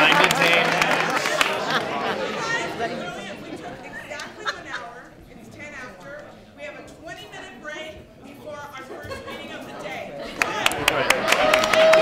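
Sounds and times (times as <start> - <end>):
applause: 0.0 - 2.0, 10.4 - 12.0
audience chatter: 0.0 - 12.0.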